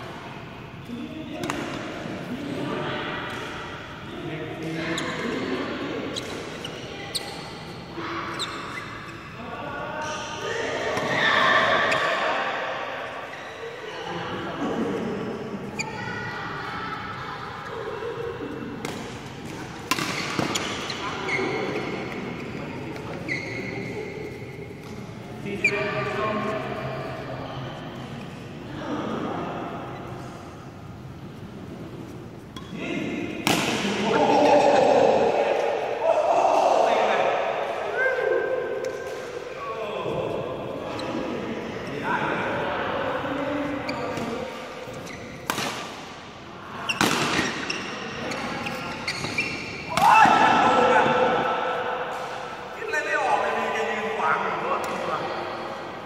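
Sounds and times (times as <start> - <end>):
players talking and calling out: 0.2 - 31.0, 31.7 - 56.0
rackets hitting shuttlecock: 1.4 - 1.9, 18.8 - 20.8, 33.4 - 34.1, 45.4 - 46.2, 46.9 - 50.6.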